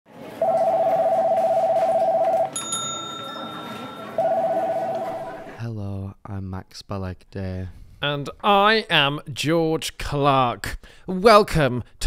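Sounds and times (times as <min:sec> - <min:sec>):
faint steady high tones: 0:00.4 - 0:05.6
telephone trilling ring: 0:00.4 - 0:05.6.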